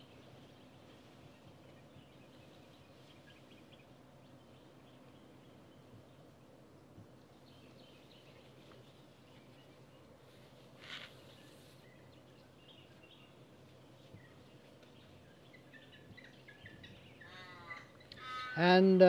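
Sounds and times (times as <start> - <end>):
soft rustle: 0.0 - 4.0, 6.9 - 16.2
soft bird chirps: 0.0 - 18.7.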